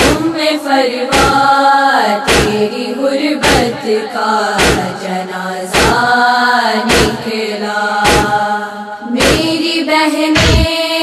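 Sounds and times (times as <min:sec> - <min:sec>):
deep sharp thump: 0:00.0 - 0:00.3, 0:02.3 - 0:02.6, 0:04.6 - 0:05.0, 0:05.8 - 0:06.0, 0:06.9 - 0:07.3, 0:08.0 - 0:08.4, 0:10.4 - 0:10.8
women chanting a lament: 0:00.0 - 0:11.0.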